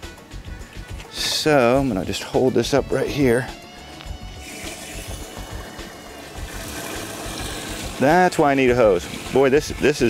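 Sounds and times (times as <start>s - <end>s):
faint music: 0.0s - 10.0s
water running into plastic jug: 4.4s - 10.0s.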